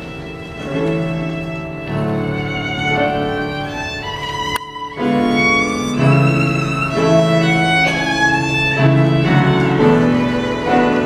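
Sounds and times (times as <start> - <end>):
solo violin slow melody: 0.0 - 11.0.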